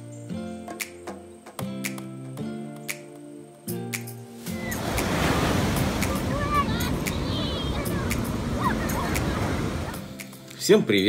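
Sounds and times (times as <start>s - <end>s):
ocean surf breaking: 4.4s - 10.4s.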